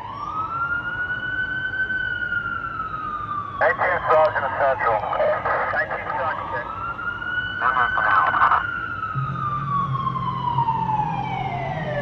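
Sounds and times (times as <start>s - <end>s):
police siren wailing: 0.0s - 12.0s.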